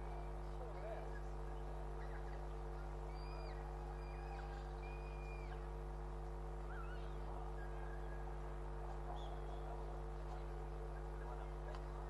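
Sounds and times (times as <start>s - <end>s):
steady electrical hum: 0.0s - 12.0s
faint bird calls: 0.2s - 12.0s.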